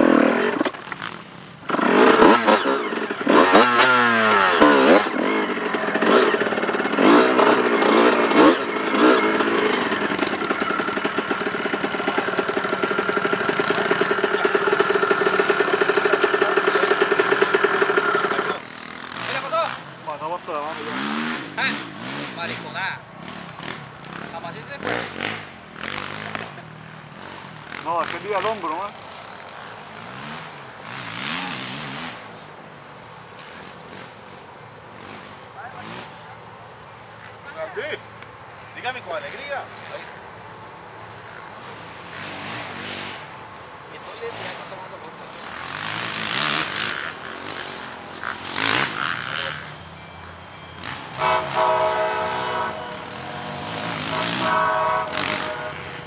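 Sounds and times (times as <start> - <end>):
dirt bike engine revving: 0.0 - 32.4, 33.4 - 36.3, 41.2 - 56.0
men talking: 14.2 - 23.0, 24.2 - 25.2, 27.8 - 29.0, 37.3 - 38.1, 38.7 - 40.2, 43.8 - 45.4.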